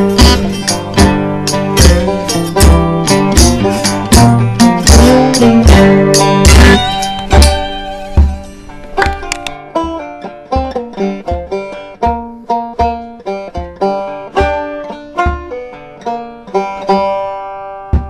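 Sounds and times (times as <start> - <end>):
banjo picking a fast tune: 0.0 - 18.0.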